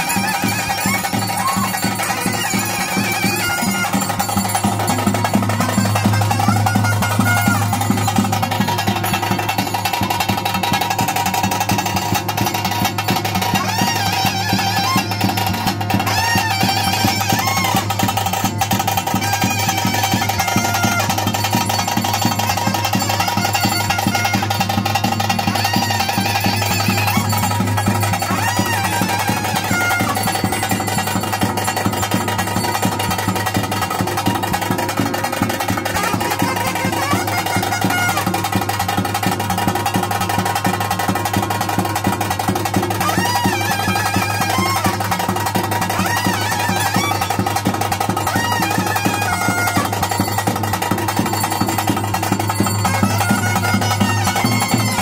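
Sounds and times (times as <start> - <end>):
drumming: 0.0 - 55.0
held melody line: 0.0 - 55.0.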